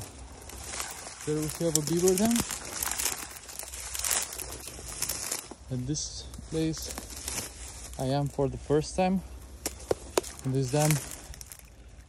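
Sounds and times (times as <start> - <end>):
dry reeds rustling and crackling: 0.0 - 12.0
steady low rumble: 0.0 - 12.0.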